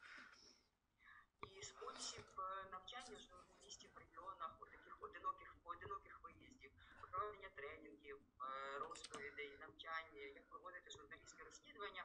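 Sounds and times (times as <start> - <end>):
person speaking quietly: 1.4 - 7.5
faint whispery speech: 1.4 - 7.6.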